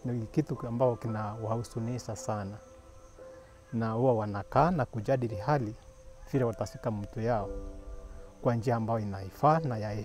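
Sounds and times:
man speaking: 0.0 - 2.6, 3.7 - 7.5, 8.4 - 10.0.

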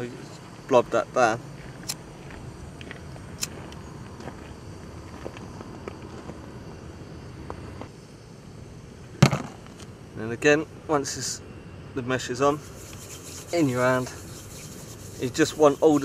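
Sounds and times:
outdoor background hum: 0.0 - 16.0.

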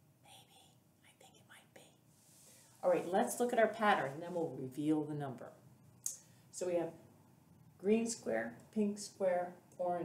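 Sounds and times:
person whispering: 0.2 - 2.0
woman speaking: 2.8 - 5.6, 6.5 - 7.0, 7.8 - 10.0.

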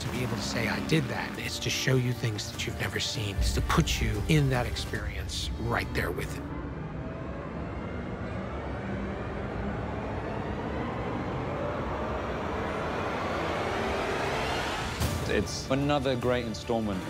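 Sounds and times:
aircraft engine roar: 0.0 - 17.0
faint rising whine: 4.6 - 15.2.

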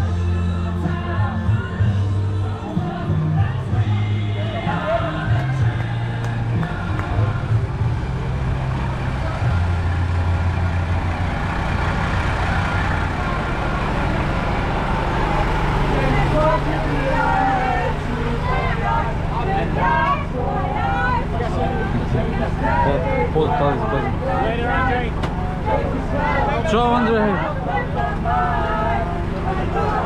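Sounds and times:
diesel truck engine idling: 0.0 - 30.0
people's voices: 0.0 - 30.0.

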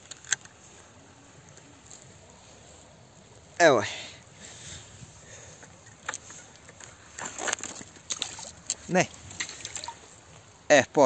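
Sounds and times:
fish splashing in shallow water: 7.1 - 10.2.

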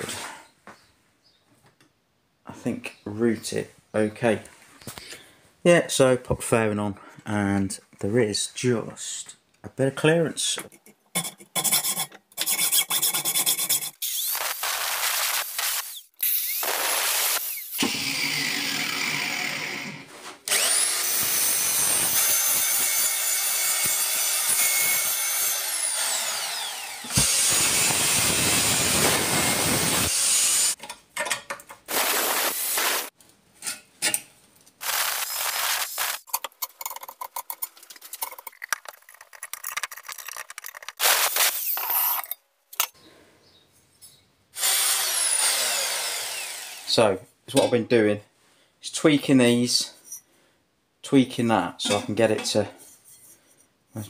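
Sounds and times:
hacksaw cutting steel tube: 11.2 - 18.0, 20.5 - 30.9
angle grinder cutting sheet steel: 11.6 - 30.8, 31.9 - 33.1, 34.8 - 36.3, 41.0 - 42.3, 44.6 - 47.0.

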